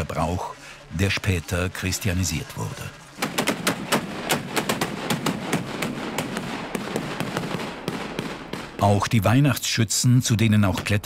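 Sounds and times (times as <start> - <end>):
black-powder gun shots: 3.2 - 9.0.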